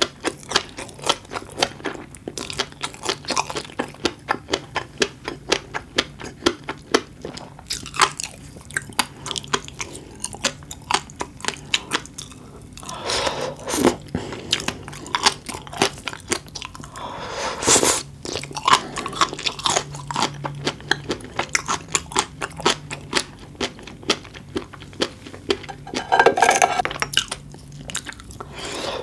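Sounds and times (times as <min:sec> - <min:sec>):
slurping oyster: 0:25.6 - 0:26.8.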